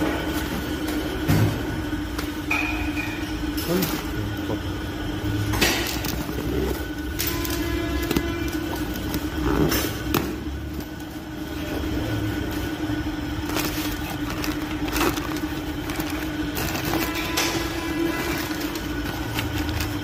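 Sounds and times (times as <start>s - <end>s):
low hum and rumble: 0.0s - 20.0s
packing paper crackling: 5.8s - 11.2s, 12.3s - 20.0s
plastic bag rustling: 5.8s - 20.0s.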